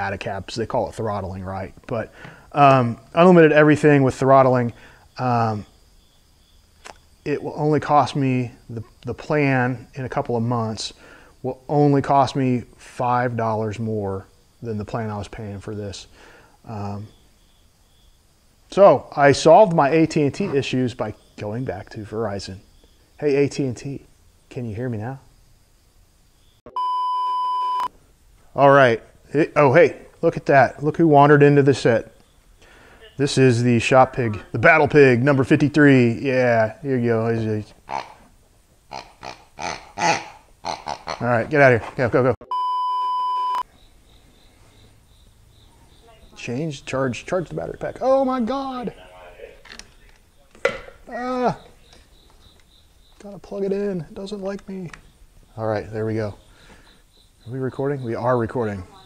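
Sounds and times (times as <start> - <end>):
click: 6.8 - 7.0
steady test tone beep: 26.7 - 27.9, 42.4 - 43.7.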